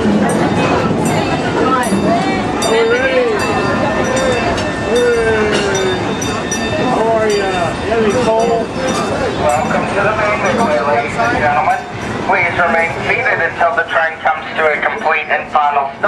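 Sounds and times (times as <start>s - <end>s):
crowd chatter and calls: 0.0s - 16.0s.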